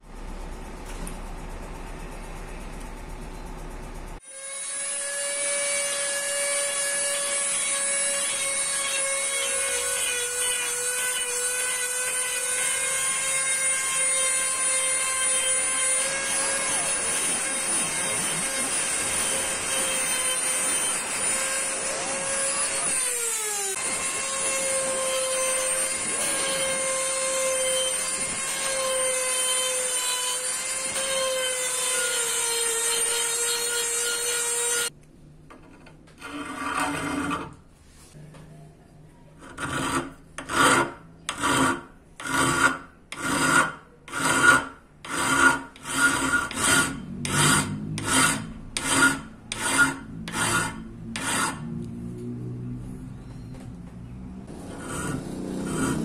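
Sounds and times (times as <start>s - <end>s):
rotary tool grinding steel: 4.2s - 34.9s, 36.2s - 37.6s, 39.4s - 51.8s, 54.5s - 56.0s
hand file rasping steel: 36.2s - 37.6s, 39.4s - 51.7s, 54.5s - 56.0s.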